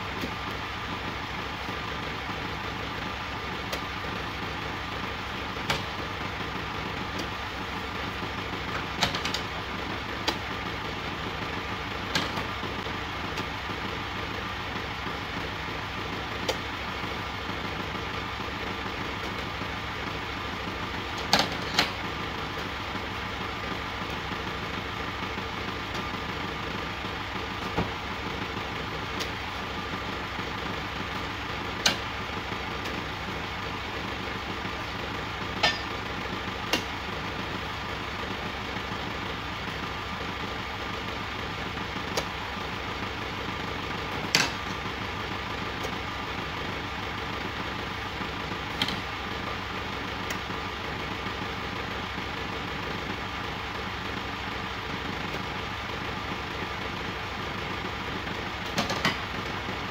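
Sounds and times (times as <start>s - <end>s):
truck engine idling: 0.0s - 59.9s.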